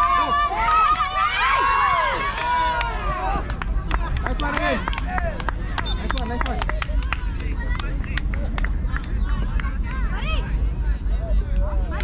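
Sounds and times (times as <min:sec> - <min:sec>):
distant shouts and chatter: 0:00.0 - 0:12.0.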